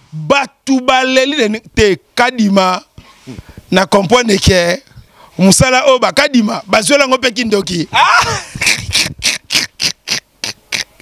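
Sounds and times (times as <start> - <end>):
man laughing breathily: 8.0 - 11.0.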